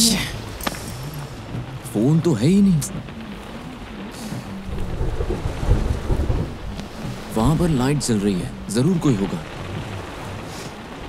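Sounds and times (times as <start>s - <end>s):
steady rain: 0.0s - 11.0s
thunder rumbling: 2.7s - 11.0s.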